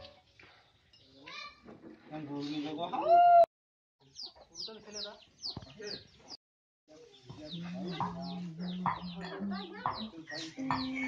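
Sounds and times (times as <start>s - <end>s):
chickens clucking and chirping: 4.0s - 6.4s, 7.0s - 11.0s.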